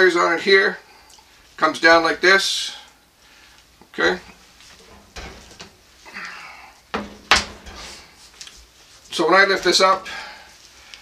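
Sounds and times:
metal frame scraping: 4.4s - 5.9s, 7.0s - 8.2s
plastic and metal knocks: 7.0s - 7.7s.

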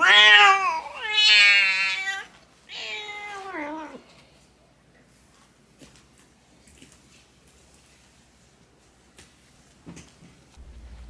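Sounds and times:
cat meowing: 0.0s - 4.0s.

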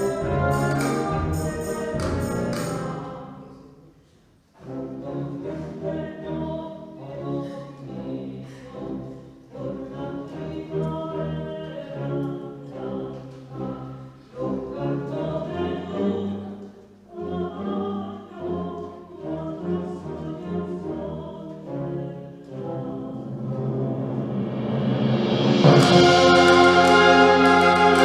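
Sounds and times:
wind band playing slow piece: 0.0s - 3.6s, 4.5s - 11.3s, 18.4s - 28.0s.

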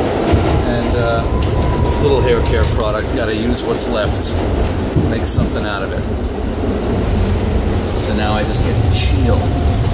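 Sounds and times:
subway car rumbling: 0.0s - 9.9s.

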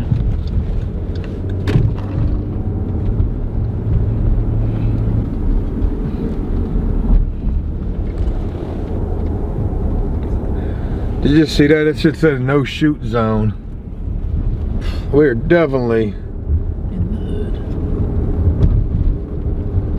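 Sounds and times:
car engine and tyre rumble: 0.0s - 19.9s.

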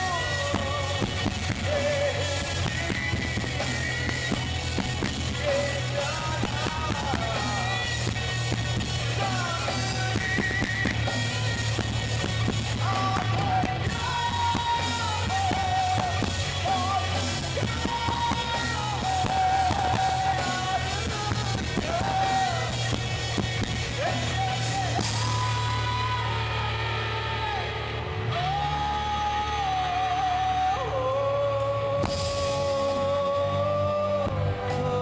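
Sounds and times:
drums: 0.0s - 35.0s
electric guitar bending notes: 0.0s - 35.0s
rock band playing live: 0.0s - 35.0s
person singing long notes: 24.0s - 35.0s.

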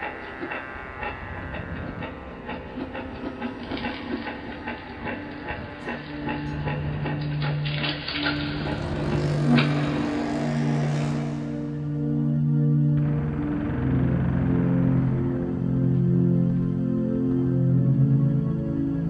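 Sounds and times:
rhythmic mechanical clicking: 0.0s - 12.0s
steady low hum: 0.0s - 19.0s.

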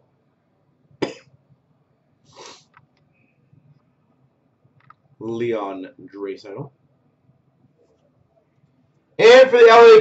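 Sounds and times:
person coughing: 1.0s - 1.3s.

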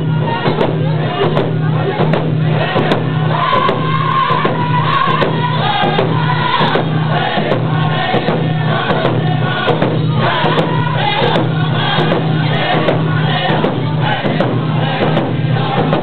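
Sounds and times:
group singing in unison: 0.0s - 16.0s
hand drums beating: 0.0s - 16.0s.

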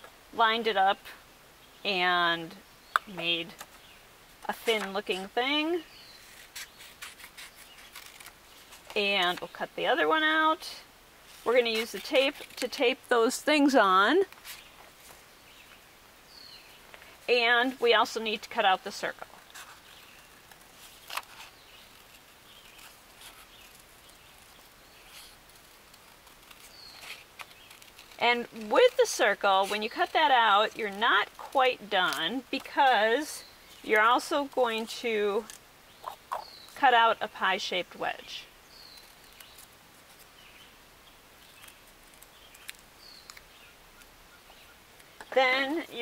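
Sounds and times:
low background hiss: 0.0s - 46.0s.

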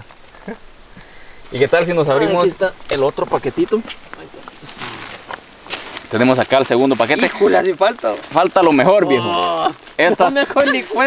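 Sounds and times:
plastic wrapping rustling: 0.0s - 11.0s.

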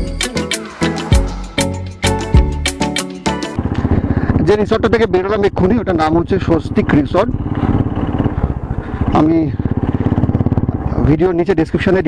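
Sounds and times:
motorcycle cruising: 0.0s - 12.0s.

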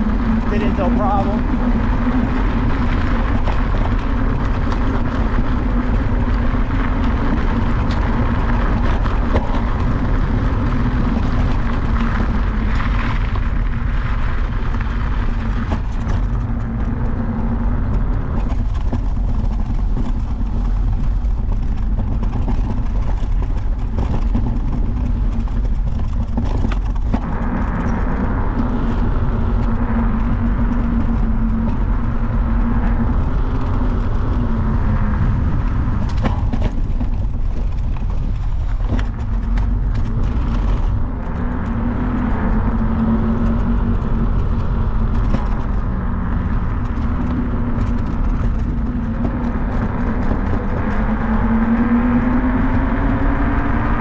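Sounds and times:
electric scooter riding rumble: 0.0s - 54.0s
low motor hum: 0.0s - 54.0s.

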